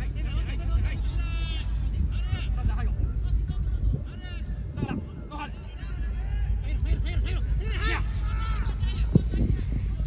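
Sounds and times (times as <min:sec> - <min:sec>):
wind on microphone: 0:00.0 - 0:10.0
players shouting: 0:05.3 - 0:09.6.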